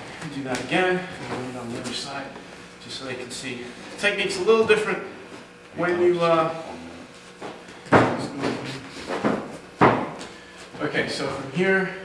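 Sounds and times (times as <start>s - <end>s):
sharp knocks: 7.9s - 10.2s.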